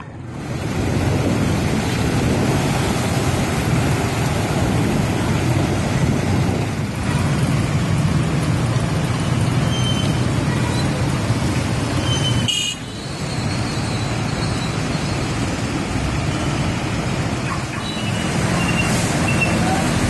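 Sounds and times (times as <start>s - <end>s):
noisy water wash: 0.0s - 20.0s
truck engine: 0.0s - 20.0s
tuk-tuk engine: 0.0s - 20.0s.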